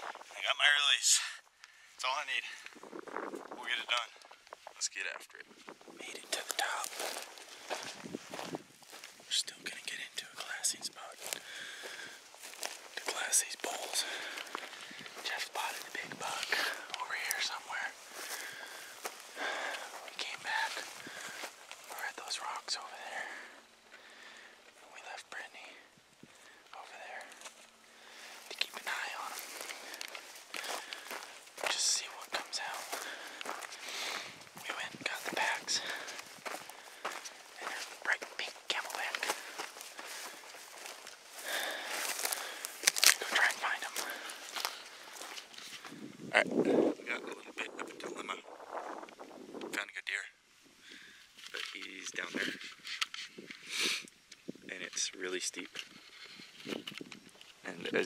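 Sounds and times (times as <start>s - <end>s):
footsteps crunching through dry brush: 0.0s - 1.0s, 1.6s - 47.3s
soft whispering: 0.0s - 52.8s, 54.7s - 56.5s, 57.6s - 58.0s.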